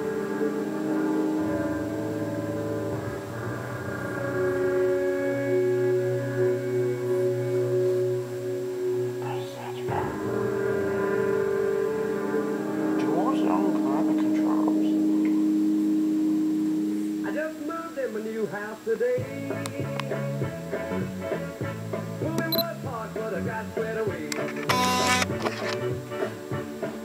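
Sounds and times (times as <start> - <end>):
music over am radio: 0.0 - 27.0.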